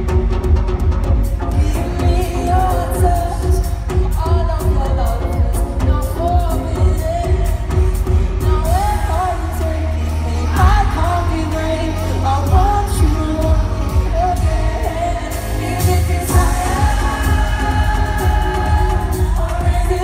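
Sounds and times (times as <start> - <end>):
synth bass and drums: 0.0 - 20.0
man singing lead vocal: 1.4 - 20.0.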